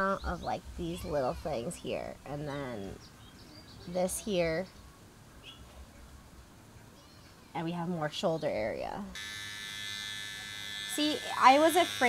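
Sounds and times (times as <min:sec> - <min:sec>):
electric trimmer buzzing: 0:09.2 - 0:12.0.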